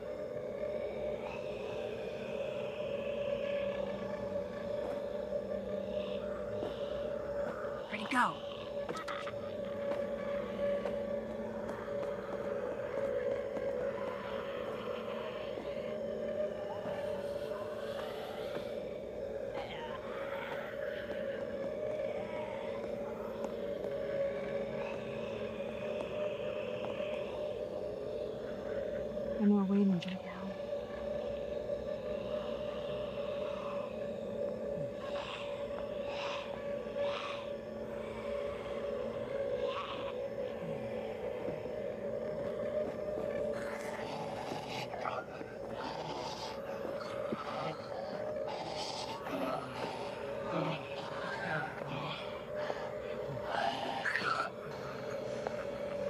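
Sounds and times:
low suspense music drone: 0.0s - 56.0s
zombie groans and snarls: 0.0s - 56.0s.

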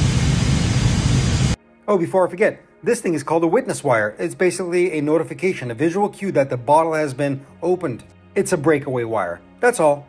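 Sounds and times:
loud rushing noise with low rumble: 0.0s - 1.6s.

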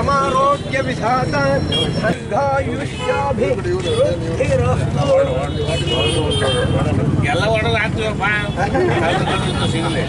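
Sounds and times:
people talking in a crowd: 0.0s - 10.0s.

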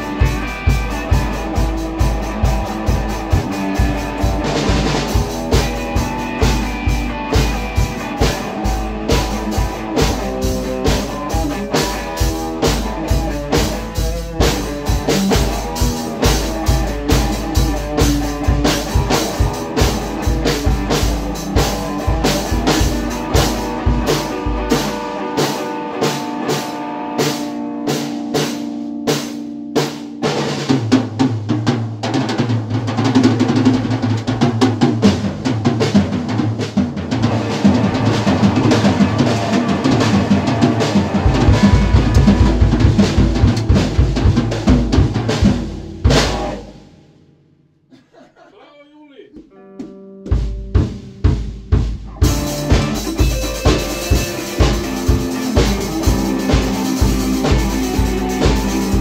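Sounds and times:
electric guitar: 0.0s - 47.4s, 49.4s - 59.0s
rock drum kit playing: 0.0s - 47.5s, 49.4s - 59.0s.

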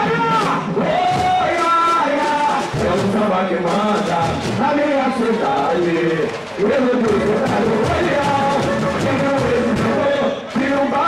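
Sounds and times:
man singing through loudspeakers: 0.0s - 11.0s
samba music: 0.0s - 11.0s.

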